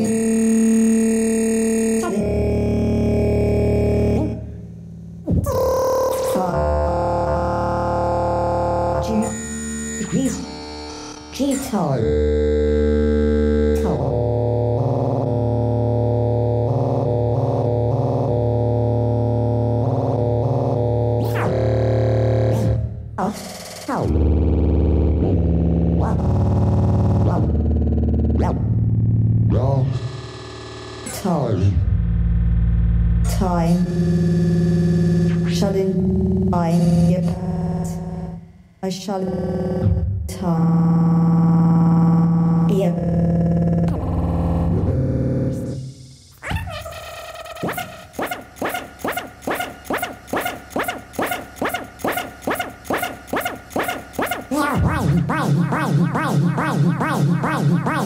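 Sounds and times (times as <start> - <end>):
electronic music held tones: 0.0 - 58.0
rising and falling pitch sweeps: 43.9 - 58.0.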